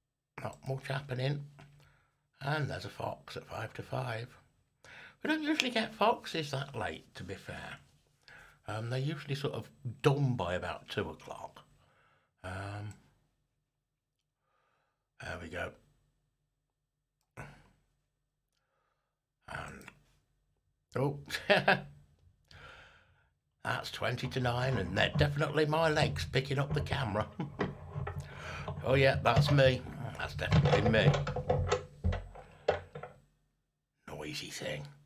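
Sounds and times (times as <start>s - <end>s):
man exhaling breathily: 22.5s - 23.2s
camera handling knocks: 30.5s - 33.2s.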